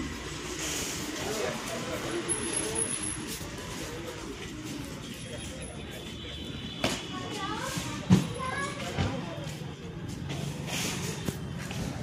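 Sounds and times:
people talking nearby: 0:00.6 - 0:12.0.

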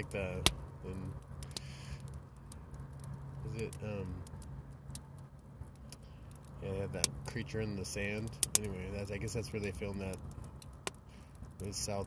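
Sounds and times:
campfire crackling: 0:00.0 - 0:12.0
low steady hum: 0:00.0 - 0:12.0.

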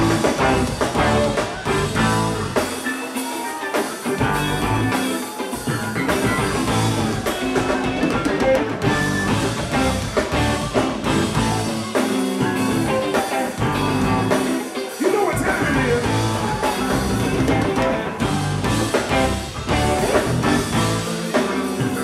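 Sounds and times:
live funk band playing: 0:00.0 - 0:22.0.

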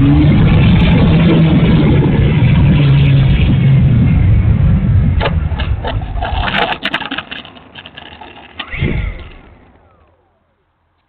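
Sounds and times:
electric motor and propeller whine: 0:06.0 - 0:11.0.

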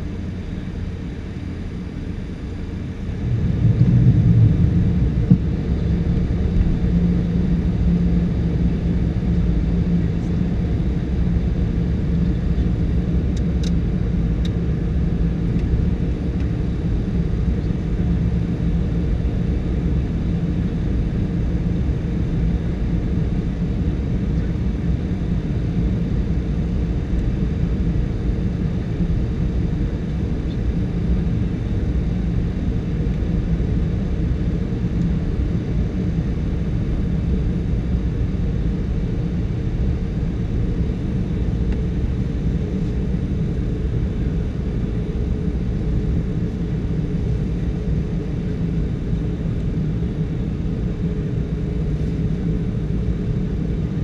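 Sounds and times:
jet engines droning: 0:00.0 - 0:54.0
air rushing over airframe: 0:02.9 - 0:06.8.

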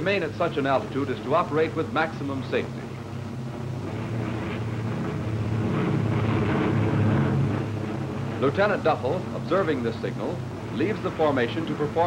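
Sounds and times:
propeller aircraft droning: 0:00.0 - 0:12.0.

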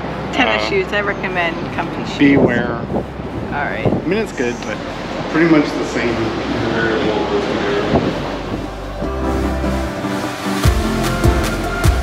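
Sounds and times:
wind rumbling on microphone: 0:00.0 - 0:10.6.

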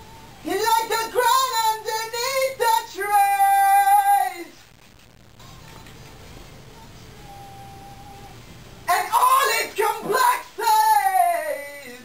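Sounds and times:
person singing into microphone: 0:00.4 - 0:04.6.

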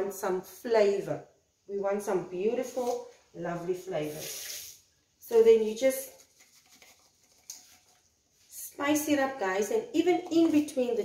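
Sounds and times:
spice shaker patter: 0:05.6 - 0:08.1.

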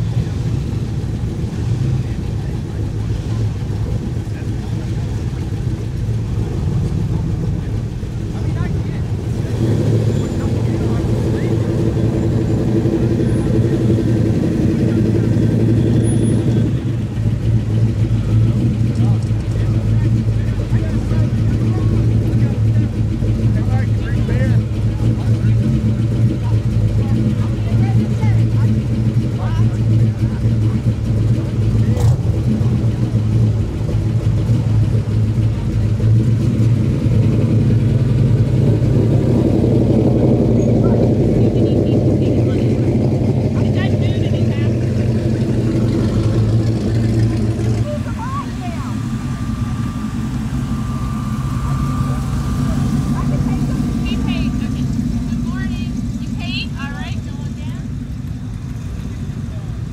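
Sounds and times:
car engine idling rumble: 0:00.0 - 0:59.9
background voices: 0:40.2 - 0:58.0.

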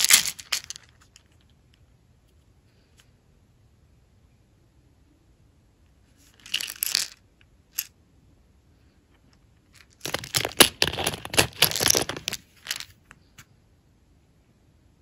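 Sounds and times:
charms rattling in plastic case: 0:00.0 - 0:01.2, 0:06.4 - 0:07.2, 0:09.8 - 0:12.9.

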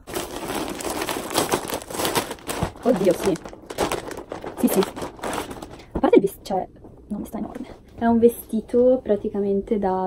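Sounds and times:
plastic packaging crinkling: 0:00.0 - 0:06.0.

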